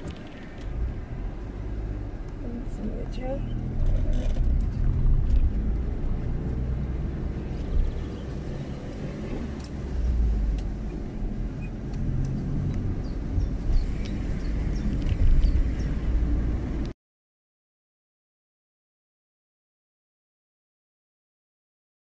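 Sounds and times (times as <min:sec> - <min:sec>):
car cabin road noise: 0:00.0 - 0:16.9.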